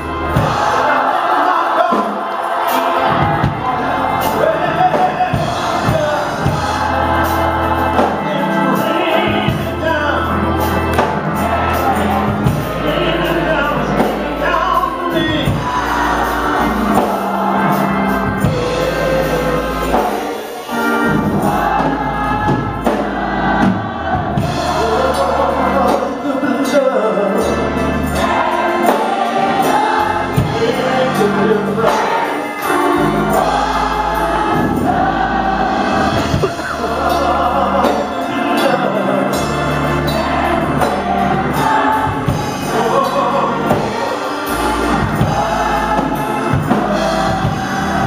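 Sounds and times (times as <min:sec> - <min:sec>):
gospel choir singing: 0:00.0 - 0:48.0.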